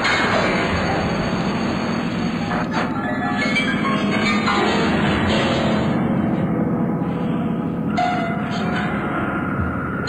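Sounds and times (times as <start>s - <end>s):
electroacoustic noise and held tones: 0.0s - 10.0s.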